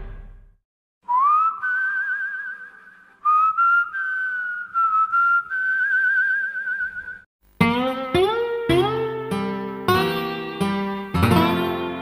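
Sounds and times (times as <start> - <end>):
person whistling a slow tune: 1.0 - 7.3.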